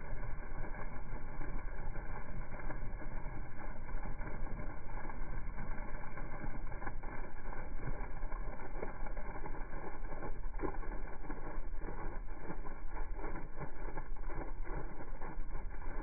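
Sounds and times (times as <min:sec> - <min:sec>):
water from hose splashing on soil: 0:00.0 - 0:16.0.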